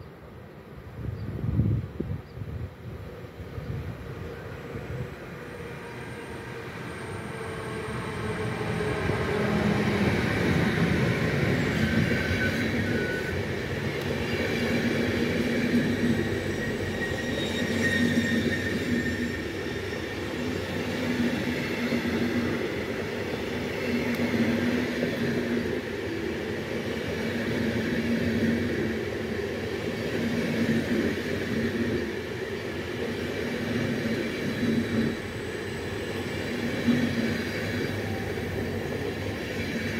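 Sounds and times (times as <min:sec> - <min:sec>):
train wheels on rails: 0:03.0 - 0:39.9.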